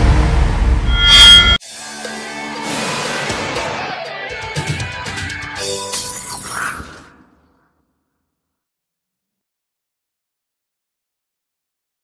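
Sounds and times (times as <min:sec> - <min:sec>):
bright high shimmer: 0:00.8 - 0:01.6.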